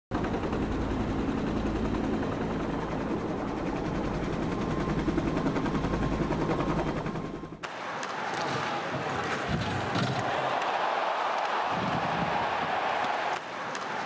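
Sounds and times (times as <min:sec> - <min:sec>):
helicopter rotor blades chopping: 0:00.2 - 0:14.0.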